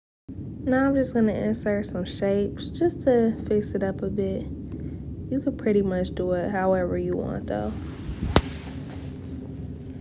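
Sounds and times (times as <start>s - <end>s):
faint room noise: 0.3s - 10.0s.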